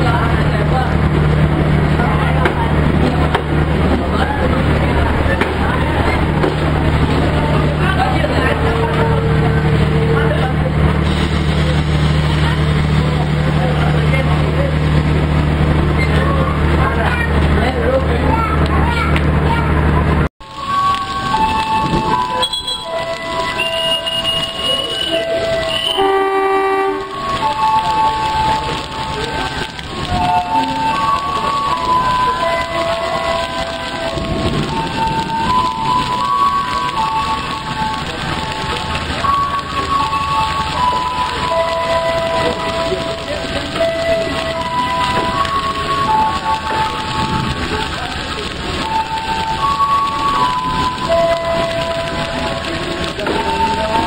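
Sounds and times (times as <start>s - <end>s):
heavy rain pouring: 0.0s - 54.0s.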